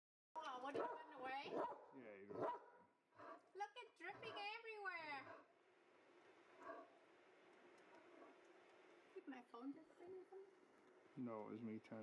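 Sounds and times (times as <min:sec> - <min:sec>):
dog barking: 0:00.7 - 0:04.6, 0:05.2 - 0:05.5, 0:06.6 - 0:06.9.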